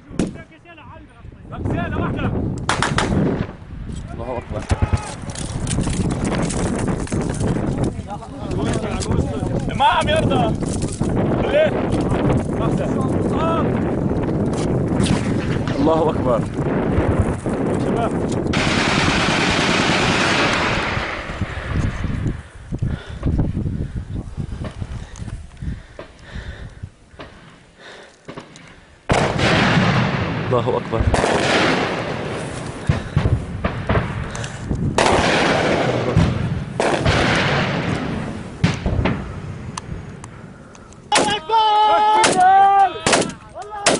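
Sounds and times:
gunfire cracks: 2.6 - 3.6, 18.5 - 21.6, 28.3 - 39.4, 42.2 - 43.9
gunshots with rolling echo: 2.6 - 5.7, 18.5 - 22.4, 28.3 - 41.4, 43.0 - 43.9.

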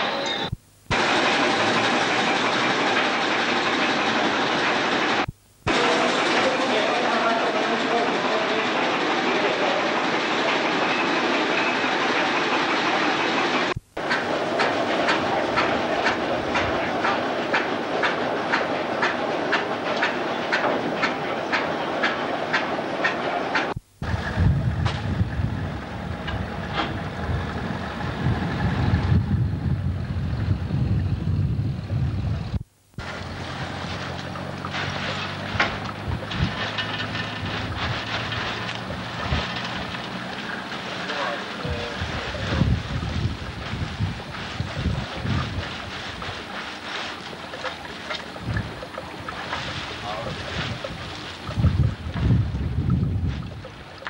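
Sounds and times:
belt-driven machinery running: 0.0 - 24.5.

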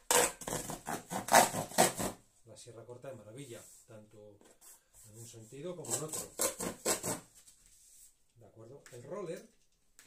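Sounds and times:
saw cutting cardboard: 0.1 - 2.2, 5.8 - 7.3.

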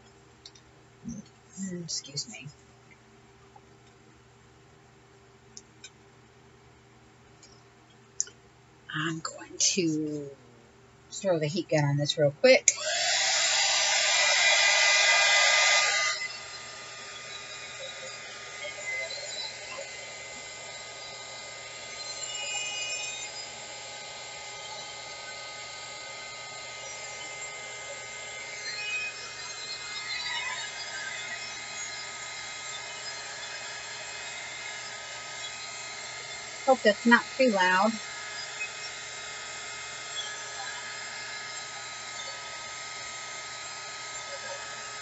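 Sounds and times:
heat gun blowing air: 12.7 - 18.6.

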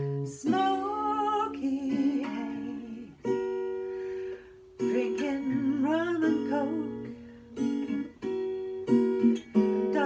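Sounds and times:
woman singing: 0.0 - 3.6, 4.8 - 8.1, 9.5 - 10.0
strummed acoustic guitar: 0.0 - 10.0.

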